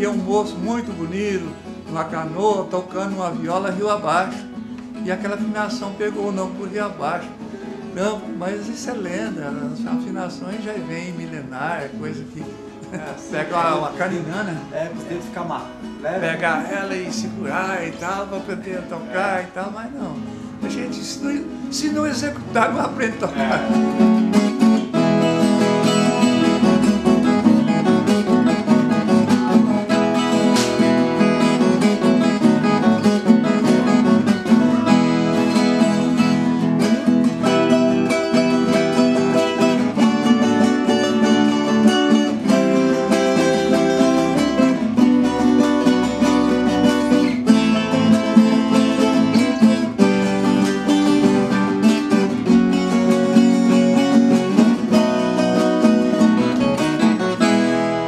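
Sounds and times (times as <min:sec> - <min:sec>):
strummed and plucked guitars: 0:00.0 - 0:58.0.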